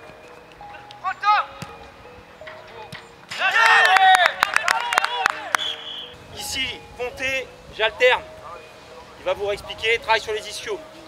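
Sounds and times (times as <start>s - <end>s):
men shouting and calling out: 3.3s - 9.8s.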